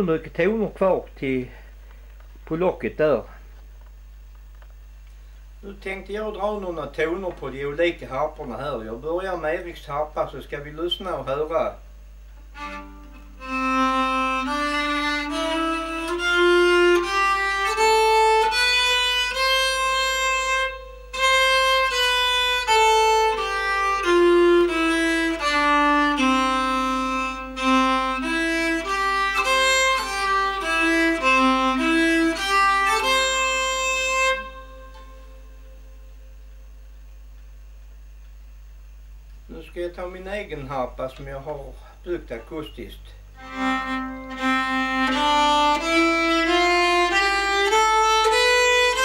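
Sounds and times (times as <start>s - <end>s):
faint hum: 0.0s - 49.0s
bowed keyed fiddle melody: 12.5s - 36.0s, 43.4s - 49.0s.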